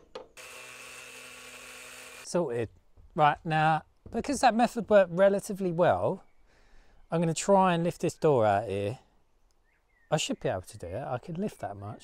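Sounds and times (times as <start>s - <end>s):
angle grinder cutting screw: 0.4s - 2.3s.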